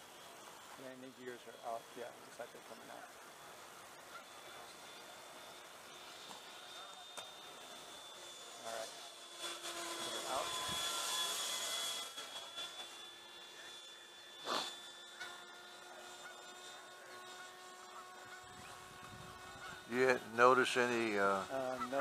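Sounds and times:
model jet fan motor whine: 0.0s - 22.0s.

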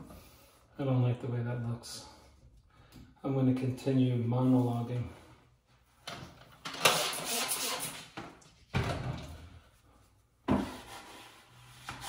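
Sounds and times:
wallpaper scraping and rustling: 9.7s - 12.0s.

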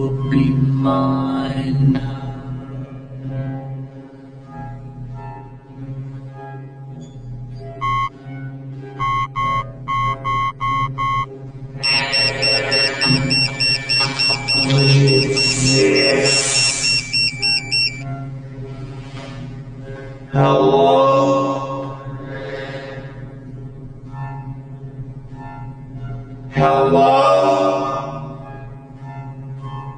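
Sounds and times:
electronic phone ringtone trilling: 7.8s - 8.1s, 9.0s - 18.0s
faint higher tones: 7.8s - 8.2s, 9.0s - 18.0s
low steady drone of tones: 7.8s - 29.9s.

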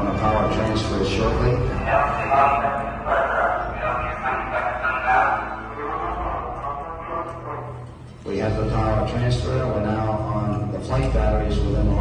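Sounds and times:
radio chatter voices: 0.1s - 8.2s.

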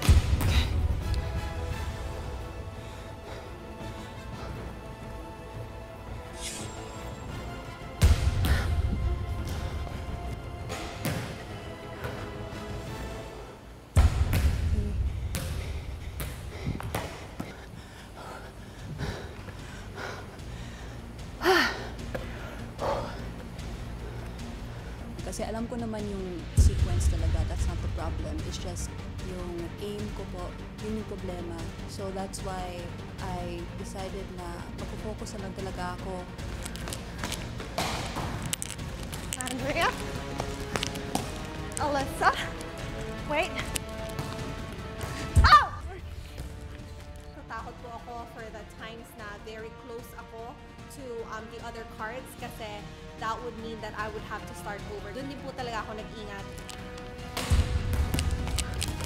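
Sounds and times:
background music: 0.0s - 59.0s
volleyball thudding against wall: 10.7s - 11.4s, 14.0s - 14.6s, 37.2s - 38.4s
volleyball thuds: 10.7s - 12.3s, 14.0s - 17.5s, 37.2s - 38.4s, 39.1s - 41.9s, 57.3s - 59.0s.

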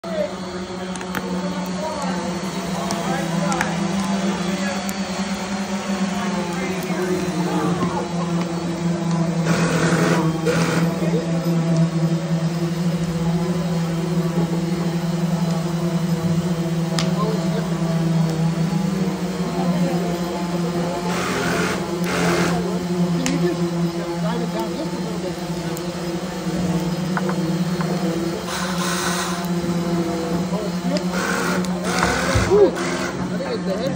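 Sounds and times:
faint voices: 0.0s - 33.9s
indistinct chatter: 0.0s - 33.9s
steady low hum: 0.0s - 33.9s.

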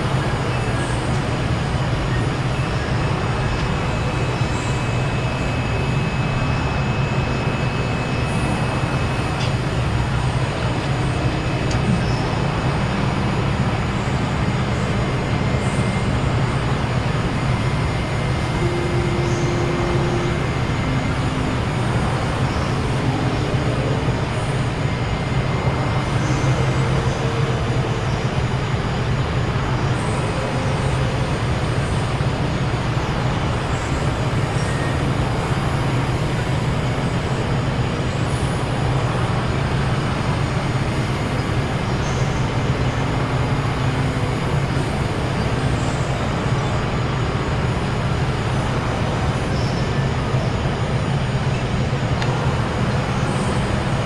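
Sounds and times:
synthesizer noise drone: 0.0s - 54.0s
low hum: 0.2s - 54.0s.

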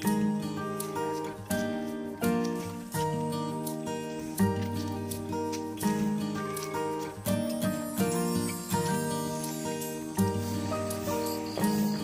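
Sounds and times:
background music with held chords: 0.0s - 12.0s.

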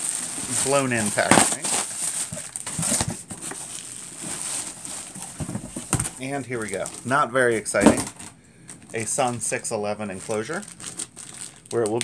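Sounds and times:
cardboard rustling: 0.0s - 11.5s
plastic packaging crinkling: 0.0s - 12.0s.

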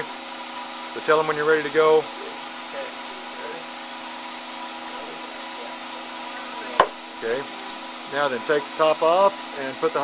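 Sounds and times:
electrical hum of equipment: 0.0s - 10.0s.

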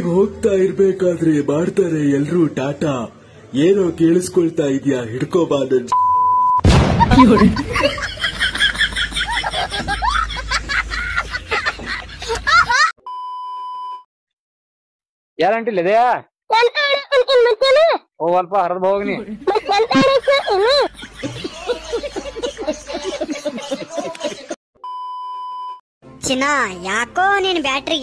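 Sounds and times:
steady electronic beep: 13.0s - 14.0s.

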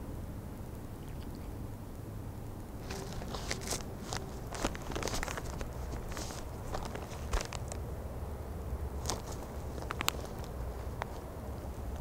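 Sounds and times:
animal tearing at plastic bag: 2.8s - 7.8s, 9.0s - 11.2s
plastic crinkling: 2.8s - 7.8s, 9.0s - 11.3s.

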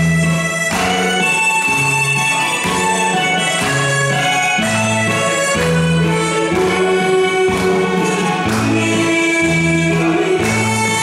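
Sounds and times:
amplified harmonica melody: 0.0s - 11.0s
recorded backing music: 0.0s - 11.0s.

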